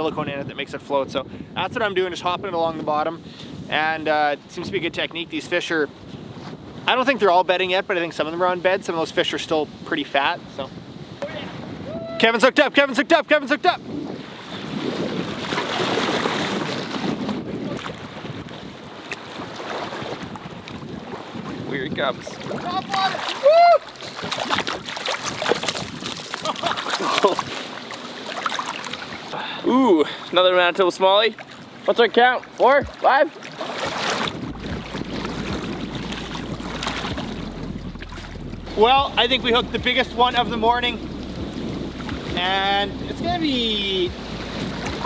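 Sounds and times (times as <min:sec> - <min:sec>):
wind buffeting microphone: 0:00.0 - 0:07.7, 0:09.6 - 0:12.4, 0:13.7 - 0:27.9, 0:33.7 - 0:45.0
choppy lake water: 0:00.0 - 0:45.0
small waves lapping on rocks: 0:15.1 - 0:29.4, 0:31.2 - 0:37.2
fish splashing into water: 0:22.9 - 0:29.3, 0:32.8 - 0:38.7.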